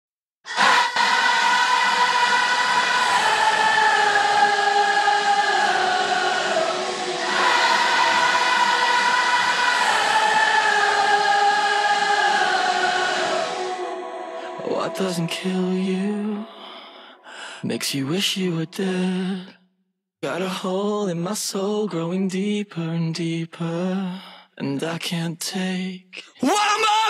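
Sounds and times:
choir-like wordless vocals: 0:00.5 - 0:19.6, 0:20.2 - 0:27.0.

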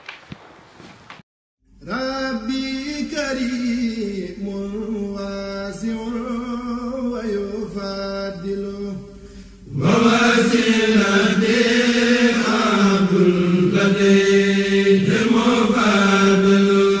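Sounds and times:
man chanting devotional poem: 0:01.8 - 0:17.0.

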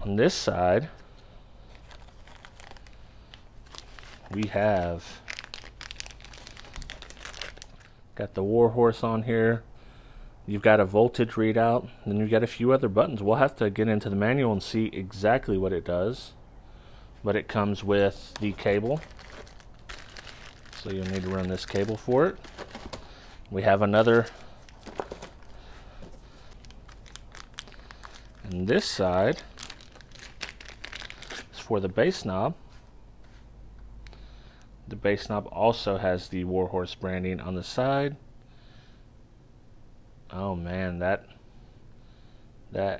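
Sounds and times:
plastic bag crinkling: 0:01.7 - 0:08.0, 0:18.1 - 0:31.6.

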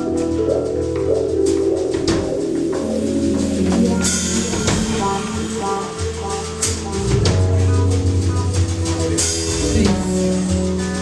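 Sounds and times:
live band playing reggae-rock: 0:00.0 - 0:11.0.

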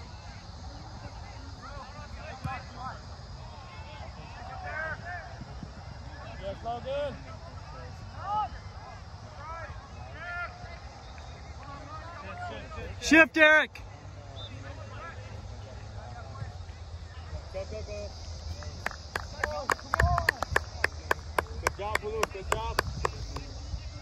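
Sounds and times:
players shouting on a field: 0:00.0 - 0:17.8.

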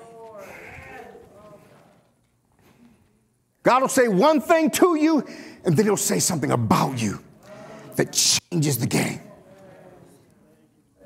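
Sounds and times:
preacher speaking into microphone: 0:03.6 - 0:09.4.

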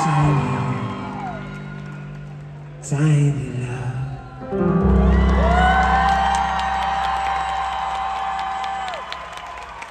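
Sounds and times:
crowd cheering and whooping: 0:00.0 - 0:02.7, 0:04.4 - 0:09.9.

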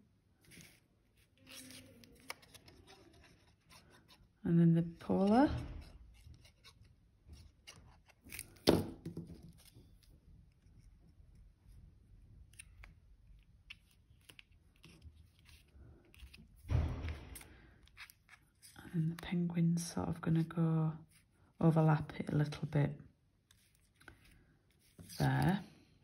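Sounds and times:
soft handling of paper and card: 0:00.3 - 0:08.6, 0:09.2 - 0:22.8, 0:23.4 - 0:26.0
papery rustle: 0:00.4 - 0:04.1.

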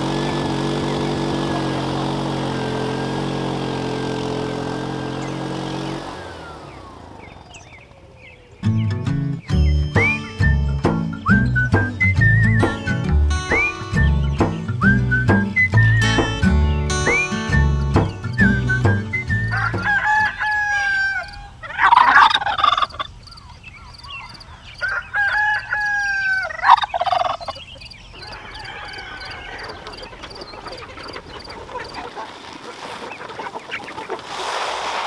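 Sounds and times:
poultry noise: 0:00.0 - 0:08.9, 0:12.6 - 0:34.8
rooster crowing: 0:01.4 - 0:05.6, 0:19.3 - 0:23.0, 0:24.6 - 0:30.9
background music with a beat: 0:08.8 - 0:19.9.

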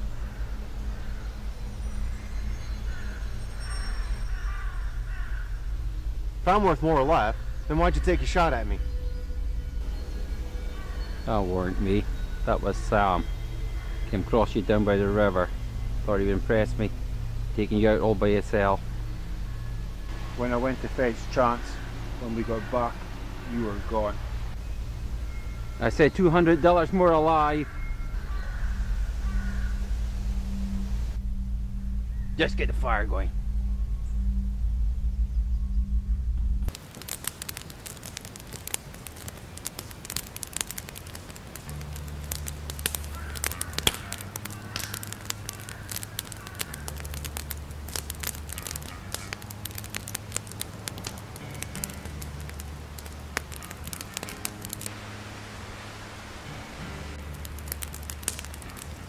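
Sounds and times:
campfire crackling and popping: 0:00.0 - 0:08.9, 0:09.7 - 0:29.9, 0:36.6 - 0:59.0
loud low hum: 0:00.0 - 0:26.6, 0:27.6 - 0:36.8
steady low drone: 0:00.0 - 0:36.8, 0:40.1 - 0:59.0.

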